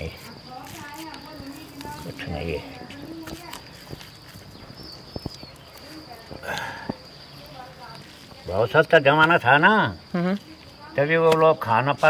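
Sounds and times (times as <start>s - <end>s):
high-pitched insect buzz: 0.0s - 12.0s.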